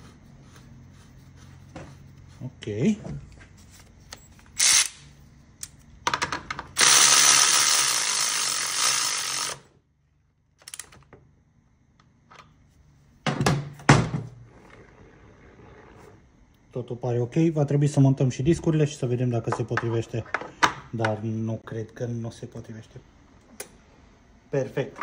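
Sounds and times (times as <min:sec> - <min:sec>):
handheld power tool running: 0:04.6 - 0:05.0, 0:06.8 - 0:09.7.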